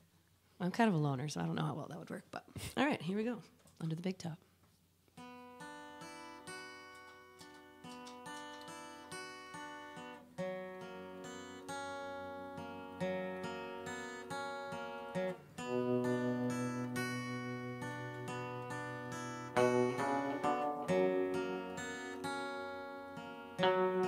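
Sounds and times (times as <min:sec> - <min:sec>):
acoustic guitar strumming chords: 0:08.2 - 0:24.0.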